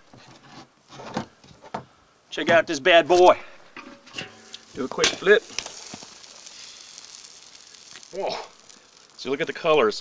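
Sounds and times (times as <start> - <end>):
meat sizzling over fire: 3.4 - 10.0.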